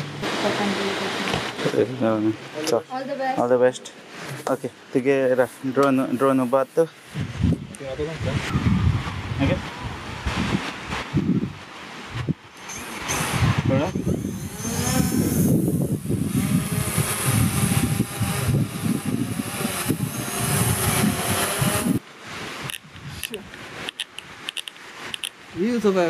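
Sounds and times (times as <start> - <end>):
wind buffeting microphone: 7.1 - 25.8
drone propellers whining: 12.6 - 22.0.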